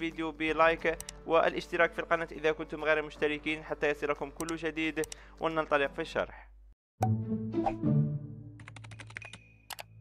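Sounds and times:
soft background music: 0.0s - 6.4s, 7.0s - 10.0s
mouse clicks: 1.0s - 1.2s.

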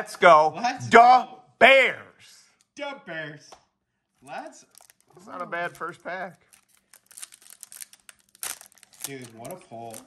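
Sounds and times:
foil wrapper crinkling: 4.3s - 10.0s.

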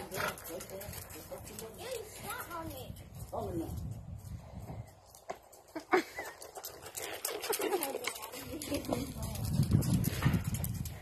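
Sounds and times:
hooves on gravel: 0.0s - 11.0s.

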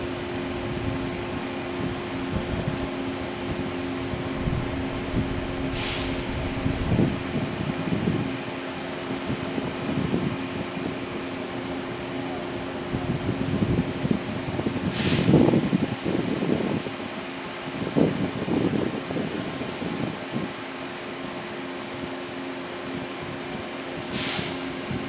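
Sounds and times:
wind gusting on microphone: 4.0s - 8.6s
brief hiss: 4.3s - 7.6s.

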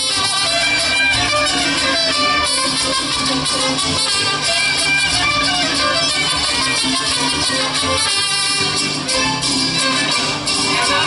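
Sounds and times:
mariachi band playing: 0.0s - 11.0s.

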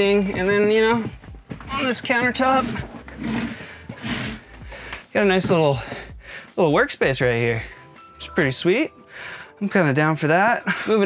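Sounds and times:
clothing and cushion rustling: 0.0s - 4.6s.

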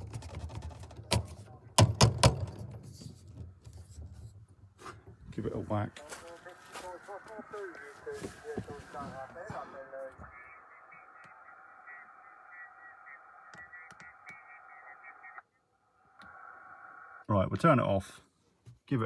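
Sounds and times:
faint narrow-band radio voices: 0.8s - 1.9s, 2.8s - 19.0s
steady radio tones: 5.3s - 17.5s.

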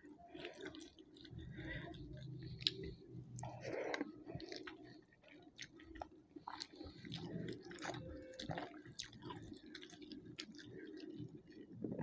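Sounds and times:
wet chewing with mouth clicks: 0.3s - 11.8s.

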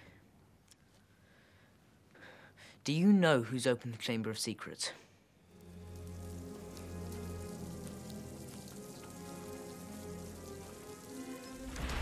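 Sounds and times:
rain-like hiss: 5.4s - 12.0s
faint ticks: 5.6s - 11.8s.

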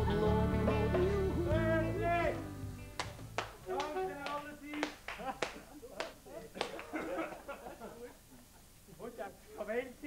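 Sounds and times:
sharp taps: 3.0s - 6.8s.

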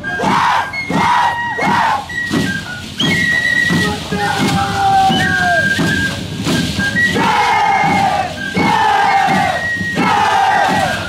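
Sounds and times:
dancers shouting in unison: 0.2s - 2.1s, 7.2s - 11.0s.

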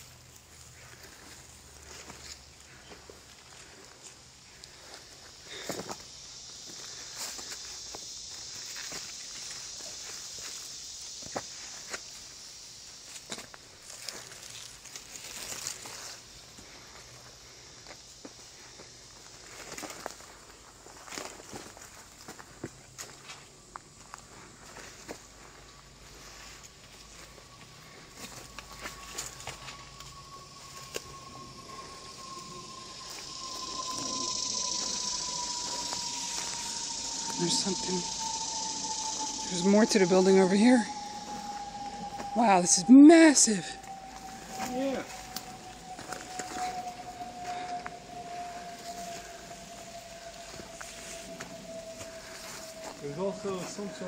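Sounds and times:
footsteps through undergrowth: 0.0s - 12.3s, 13.0s - 42.8s, 43.4s - 54.0s
hiss: 0.0s - 54.0s
leaves and twigs crackling: 0.0s - 54.0s
siren steady tone: 0.9s - 54.0s
faint thin whine: 24.3s - 54.0s.

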